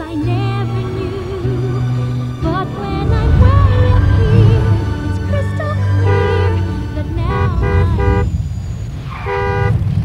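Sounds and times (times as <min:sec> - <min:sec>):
low vehicle engine rumble: 0:00.0 - 0:10.0
car horn honking: 0:05.8 - 0:09.8.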